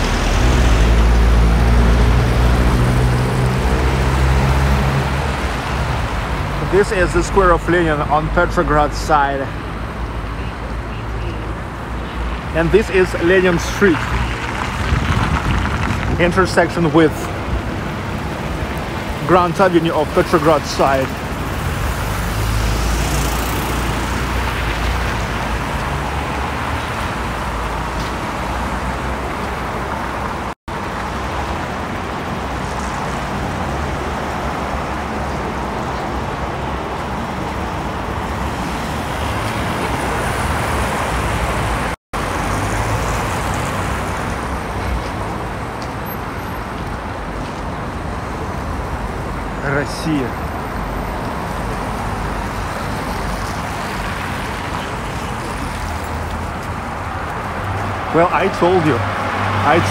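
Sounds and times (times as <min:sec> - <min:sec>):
city road traffic: 0:00.0 - 0:59.9.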